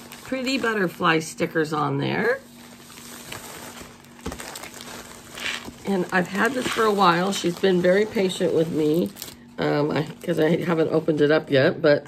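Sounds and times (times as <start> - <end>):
plastic mailer bag rustling: 0.0 - 11.4.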